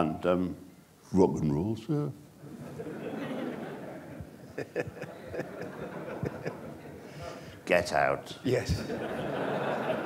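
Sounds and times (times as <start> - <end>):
audience laughing quietly: 2.4 - 7.4, 8.8 - 10.0.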